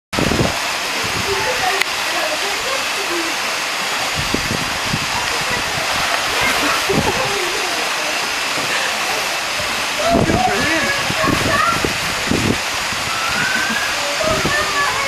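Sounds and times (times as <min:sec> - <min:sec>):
water pouring into pool: 0:00.2 - 0:15.0.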